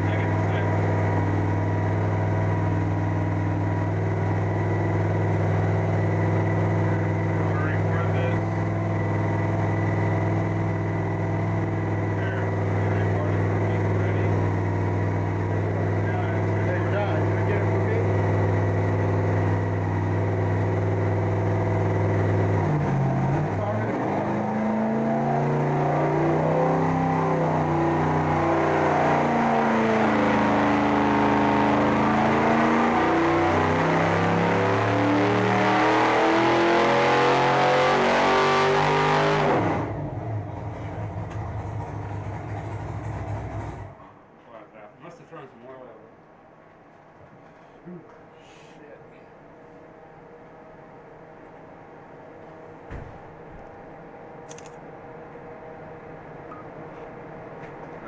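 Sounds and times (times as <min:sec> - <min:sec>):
engine running and revving: 0:00.0 - 0:44.0.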